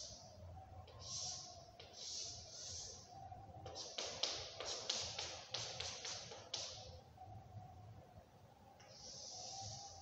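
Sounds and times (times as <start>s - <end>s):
chalk scratching on a blackboard: 1.0s - 3.0s, 3.7s - 6.8s, 8.9s - 10.0s.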